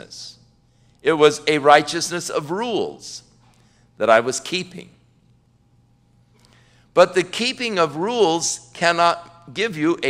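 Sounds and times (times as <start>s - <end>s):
faint low hum: 0.0s - 10.0s
soft breath: 0.6s - 1.0s, 6.3s - 6.9s
man speaking: 1.0s - 3.3s, 4.0s - 5.0s, 7.0s - 10.0s.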